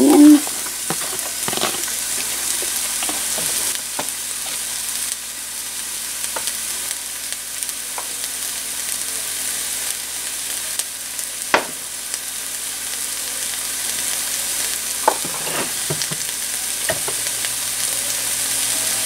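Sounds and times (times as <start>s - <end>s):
onion sizzling in oil: 0.0s - 19.0s.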